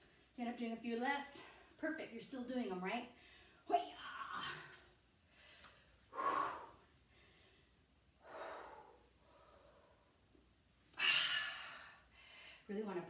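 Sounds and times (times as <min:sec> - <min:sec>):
woman breathing hard: 0:04.4 - 0:10.2, 0:11.0 - 0:12.7.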